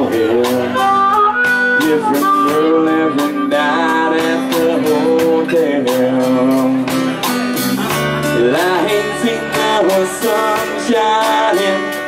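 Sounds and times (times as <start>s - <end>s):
fiddle and harmonica melody: 0.0s - 5.8s
bass and guitar: 0.0s - 12.0s.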